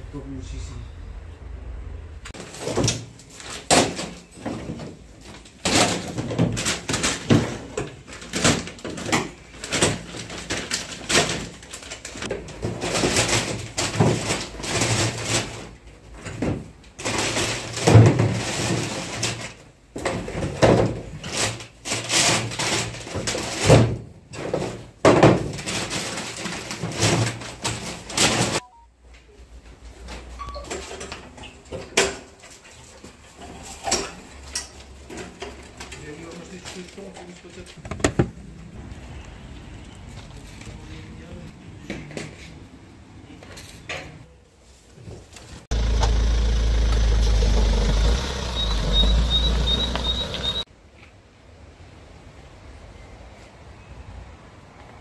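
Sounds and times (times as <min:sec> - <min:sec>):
engine rumbling: 0:00.0 - 0:02.4, 0:45.6 - 0:50.7
high chirps or beeps: 0:48.4 - 0:50.6.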